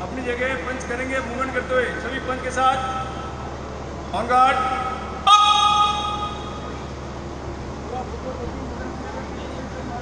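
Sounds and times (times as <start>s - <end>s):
horn blast: 4.4s - 6.9s.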